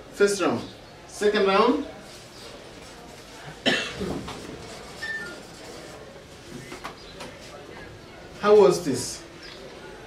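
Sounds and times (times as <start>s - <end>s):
person coughing: 3.6s - 4.1s.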